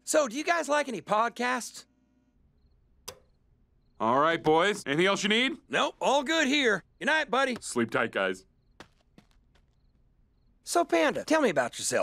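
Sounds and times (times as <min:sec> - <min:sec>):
light switch click: 0:03.1 - 0:03.3.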